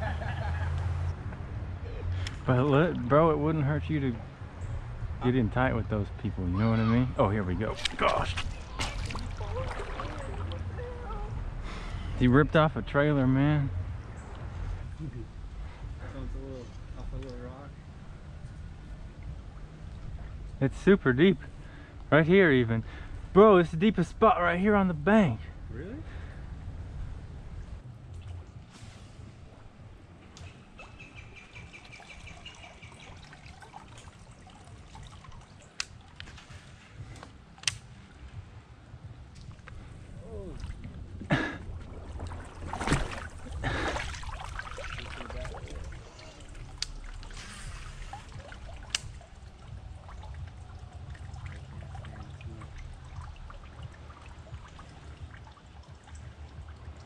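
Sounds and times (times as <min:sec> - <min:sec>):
river water sloshing: 0:00.0 - 0:12.4, 0:28.0 - 0:57.0
steady low rumble: 0:00.0 - 0:31.5, 0:34.5 - 0:57.0.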